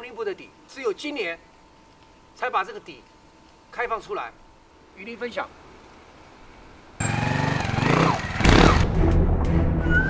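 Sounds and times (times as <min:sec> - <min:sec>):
motorcycle engine revving: 0:07.0 - 0:09.2.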